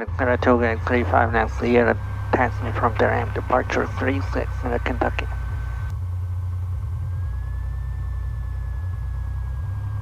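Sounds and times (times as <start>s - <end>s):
aircraft piston engine idling: 0.0s - 10.0s
faint thin whine: 0.0s - 10.0s.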